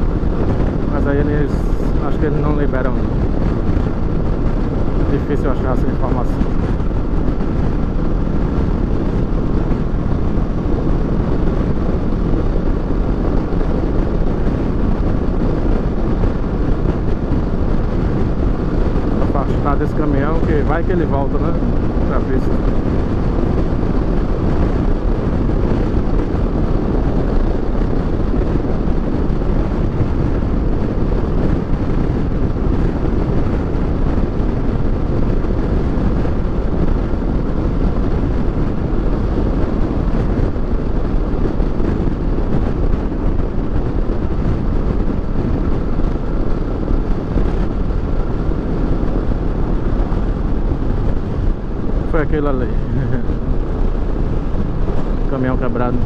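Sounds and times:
motorcycle engine running: 0:00.0 - 0:56.0
wind rush on microphone: 0:00.0 - 0:56.0
tyres on road: 0:01.9 - 0:52.6.

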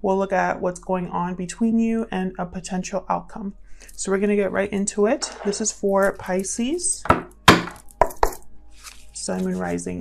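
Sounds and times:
sharp taps on hard object: 0:07.0 - 0:08.4.

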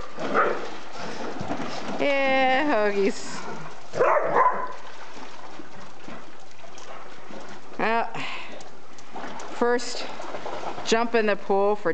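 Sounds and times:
dog barking: 0:00.3 - 0:00.6, 0:04.0 - 0:04.8.

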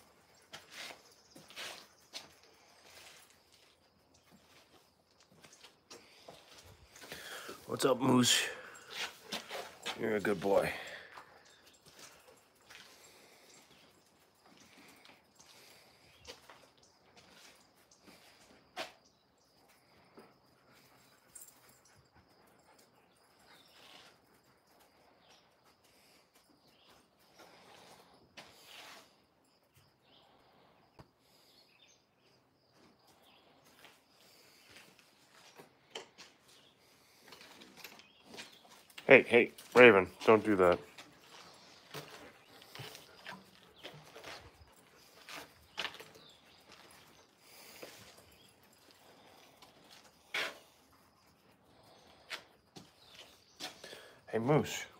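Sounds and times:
dogs moving and sniffing: 0:00.0 - 0:30.4, 0:32.3 - 0:54.3
faint clicks and scuffs: 0:16.2 - 0:19.0, 0:26.2 - 0:29.8.

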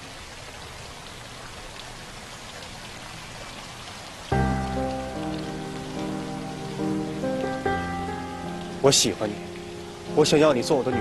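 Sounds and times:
fountain water splashing: 0:00.0 - 0:11.0.

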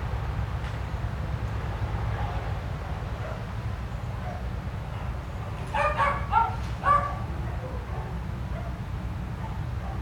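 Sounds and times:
small dog barking: 0:05.7 - 0:08.8.

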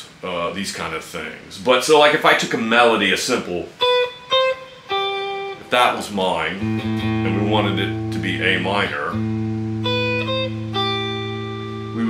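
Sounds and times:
clean electric guitar melody: 0:03.8 - 0:12.0.

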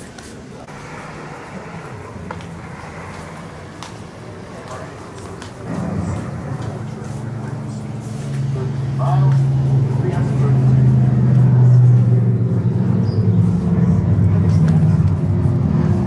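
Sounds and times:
faint indistinct voices: 0:00.0 - 0:16.0
low droning hum: 0:00.6 - 0:16.0.

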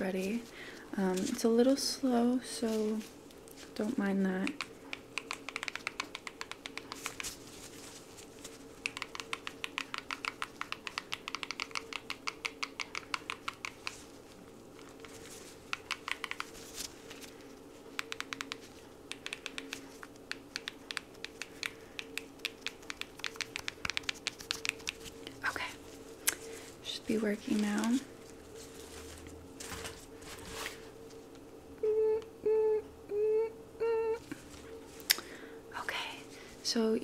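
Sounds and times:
fingers tapping keys: 0:04.4 - 0:07.3, 0:08.8 - 0:14.0, 0:14.8 - 0:16.6, 0:17.9 - 0:25.4.

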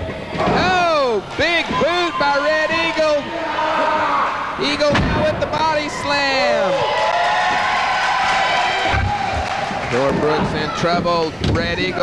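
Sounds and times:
crowd shouting: 0:01.6 - 0:04.6.

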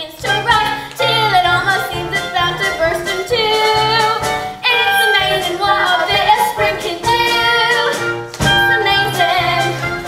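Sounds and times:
instrumental accompaniment: 0:00.0 - 0:10.0
young voices singing: 0:00.0 - 0:10.0.

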